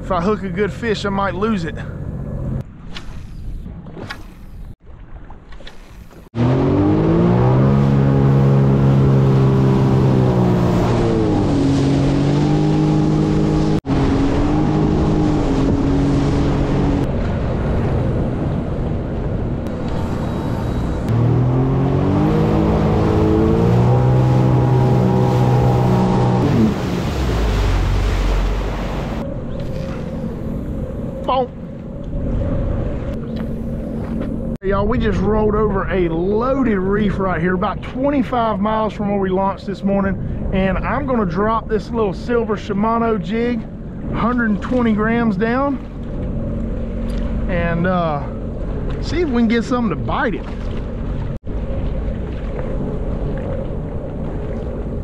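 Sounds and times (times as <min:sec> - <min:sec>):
wind and water rushing: 0:00.0 - 0:55.0
jet ski engine running: 0:06.4 - 0:32.0.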